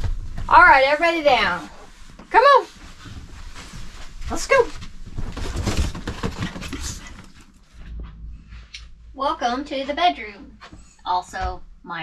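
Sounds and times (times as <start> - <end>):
dog paws thumping and clicking: 0.0 - 8.6.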